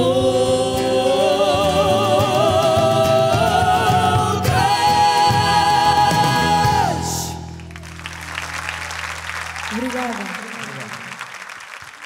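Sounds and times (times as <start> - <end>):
woman singing with vibrato: 0.0 - 7.4.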